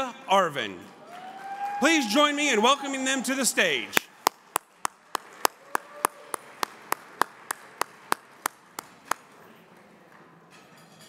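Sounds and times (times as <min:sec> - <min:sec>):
person clapping hands: 0:04.0 - 0:09.3.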